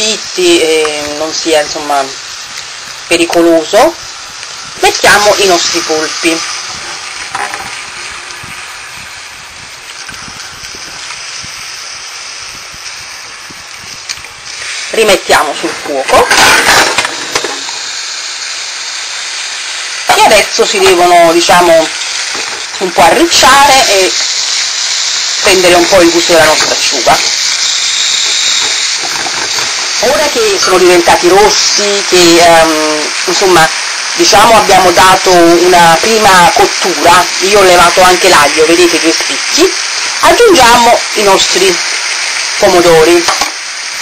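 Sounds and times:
octopus sizzling in oil: 0:00.0 - 0:44.0.

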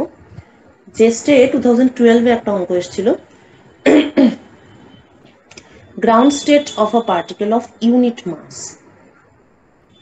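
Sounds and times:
woman clearing her throat: 0:03.9 - 0:04.5.

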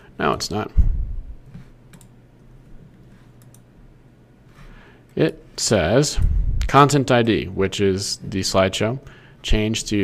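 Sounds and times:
steady low hum: 0:00.0 - 0:10.0
computer mouse clicks: 0:01.5 - 0:02.2, 0:02.9 - 0:03.7.

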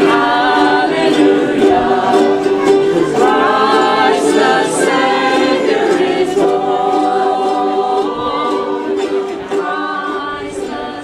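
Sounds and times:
ukuleles strummed: 0:00.0 - 0:11.0
women singing in chorus: 0:00.0 - 0:11.0.

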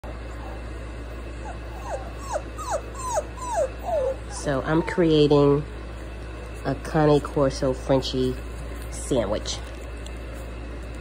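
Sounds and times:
puppy whining: 0:00.0 - 0:06.0.

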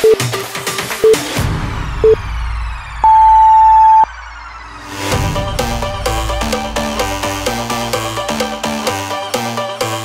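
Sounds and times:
high electronic timer beep: 0:00.0 - 0:00.2, 0:03.0 - 0:04.1
quiet electronic music: 0:00.0 - 0:00.3, 0:03.0 - 0:09.0.

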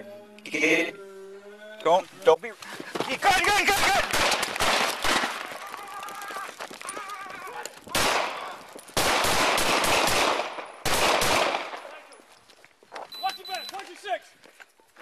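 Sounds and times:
rapid gunfire: 0:03.8 - 0:05.5, 0:08.0 - 0:08.4, 0:09.0 - 0:11.8.

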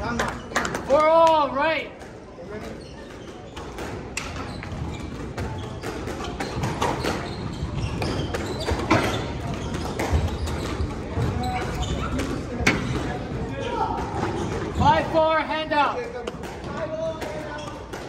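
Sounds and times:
murmur of voices: 0:00.0 - 0:18.0
squash ball hitting rackets and walls: 0:00.1 - 0:15.2, 0:16.0 - 0:18.0.

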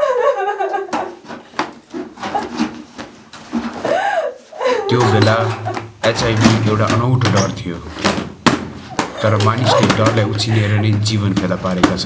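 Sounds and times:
person speaking: 0:04.7 - 0:08.0, 0:09.1 - 0:12.0.

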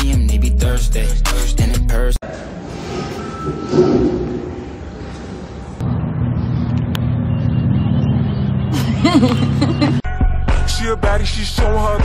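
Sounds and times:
engine humming: 0:03.4 - 0:10.0.

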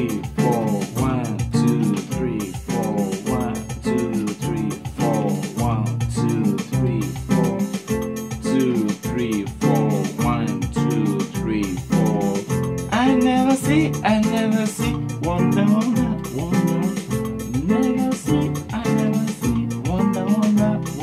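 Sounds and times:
electronic keyboard chord groove: 0:00.0 - 0:21.0.

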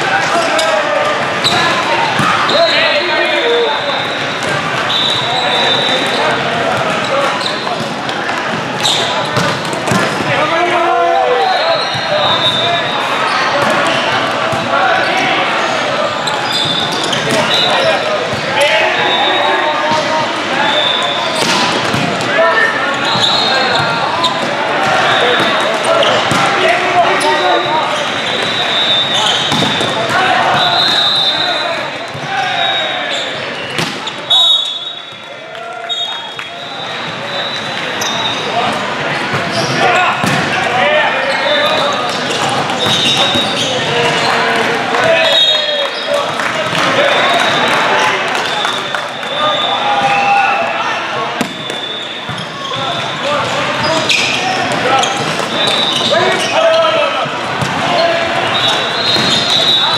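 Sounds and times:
voices calling and shouting: 0:00.0 - 0:59.9
sneakers squeaking on court floor: 0:00.4 - 0:10.3, 0:11.4 - 0:35.2, 0:35.9 - 0:40.6, 0:41.2 - 0:47.6, 0:50.8 - 0:59.9
volleyballs being hit and bouncing: 0:03.5 - 0:10.5, 0:13.5 - 0:15.4, 0:16.3 - 0:18.8, 0:21.3 - 0:32.4, 0:33.6 - 0:34.3, 0:37.0 - 0:40.8, 0:41.5 - 0:45.2, 0:51.2 - 0:56.4, 0:57.2 - 0:59.9.

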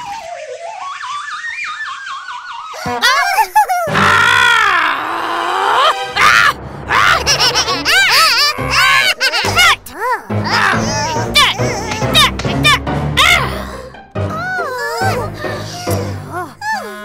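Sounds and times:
wobbling cartoon whistle: 0:00.0 - 0:03.0
cartoon character wailing cry: 0:02.8 - 0:13.6, 0:14.3 - 0:17.0.

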